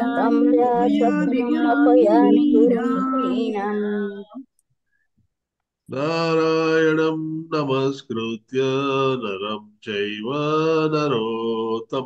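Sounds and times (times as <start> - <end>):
man chanting: 0.0 - 3.6, 5.9 - 12.0.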